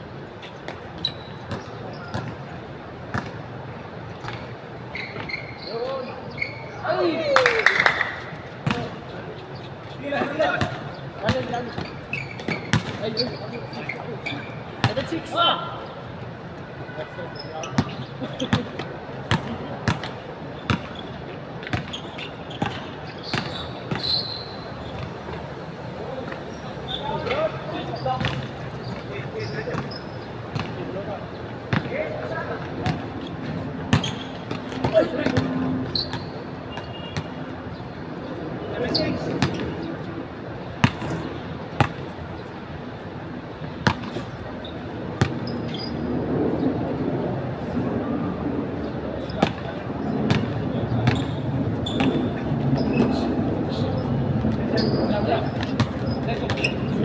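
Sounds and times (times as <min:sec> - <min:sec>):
players calling out: 0:04.9 - 0:16.1
basketball bouncing on hard court: 0:50.3 - 0:52.2, 0:55.6 - 0:56.7.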